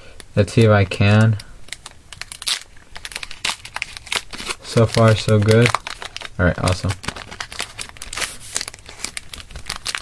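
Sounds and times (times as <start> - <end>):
foil wrapper crinkling: 0.2 - 10.0.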